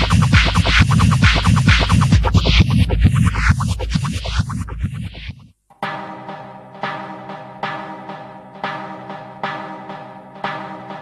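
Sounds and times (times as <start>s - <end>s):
techno kick-drum beat: 0.0s - 5.5s
sustained synth chord: 5.7s - 11.0s.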